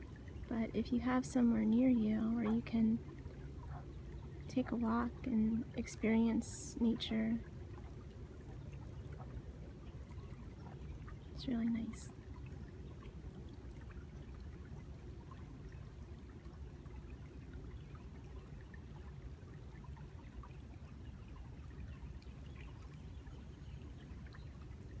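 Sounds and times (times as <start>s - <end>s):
small water splashes: 0.0s - 25.0s
stream trickling: 0.0s - 25.0s.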